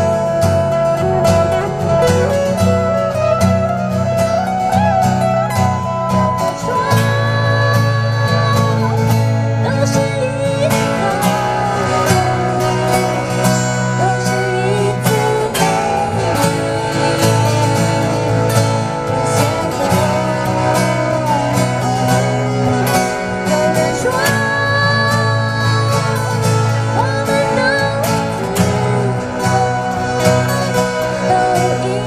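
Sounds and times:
acoustic guitars playing: 0.0 - 32.0.

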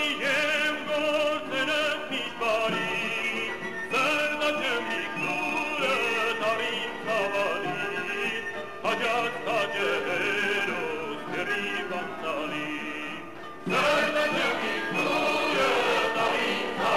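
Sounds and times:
man singing folk song: 0.0 - 16.3
instrumental accompaniment: 0.0 - 16.9.

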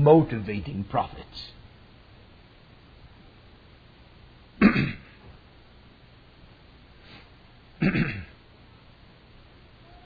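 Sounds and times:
man clearing throat: 4.6 - 5.2, 7.8 - 8.4.

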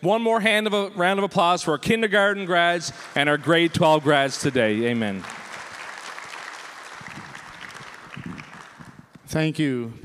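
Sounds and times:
congregation applauding: 2.2 - 9.2.

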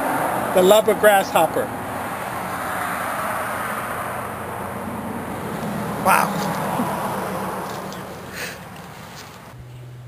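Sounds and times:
outdoor background rush: 0.0 - 10.0.

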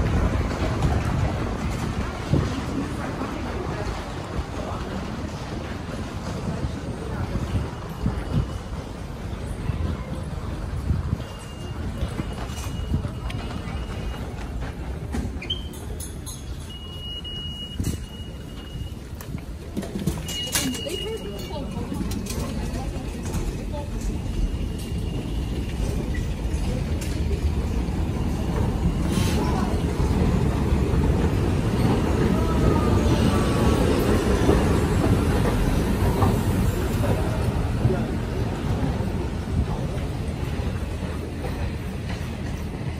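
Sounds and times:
subway train rumble: 0.0 - 42.9
faint wheel squeals: 15.3 - 19.1.

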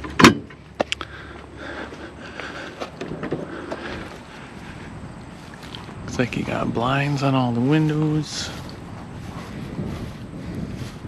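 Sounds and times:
low outdoor noise: 0.0 - 11.0.

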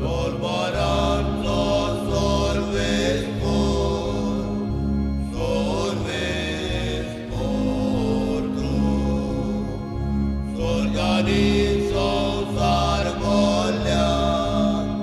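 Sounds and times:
held low bass notes: 0.0 - 15.0
hymn singing: 0.0 - 15.0.

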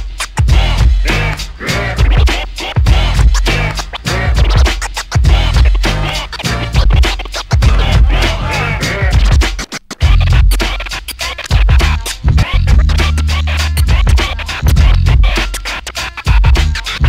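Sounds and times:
beat with heavy bass line: 0.0 - 17.0
record scratching: 0.0 - 17.0.

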